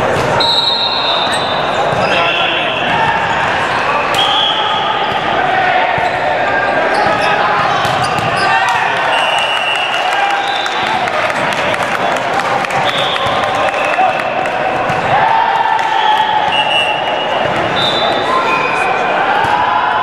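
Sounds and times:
voices echoing in a gym: 0:00.0 - 0:20.0
sneakers squeaking on wood floor: 0:06.8 - 0:08.6.

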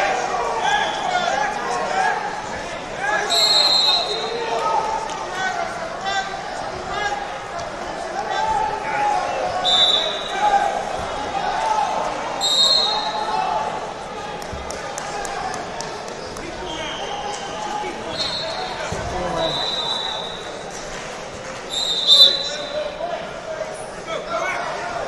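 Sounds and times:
many voices talking in a hall: 0:00.0 - 0:25.0
shrill referee whistle blasts: 0:03.3 - 0:04.4, 0:09.6 - 0:10.4, 0:12.4 - 0:13.2, 0:19.4 - 0:20.4, 0:21.7 - 0:22.8
sharp claps: 0:14.4 - 0:16.7.

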